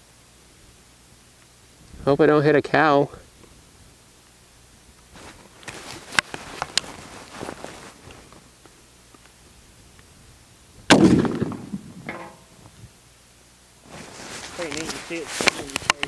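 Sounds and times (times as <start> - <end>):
handling clicks and rustles: 5.1 - 9.4, 13.9 - 16.0
rifle gunshot: 10.9 - 12.4.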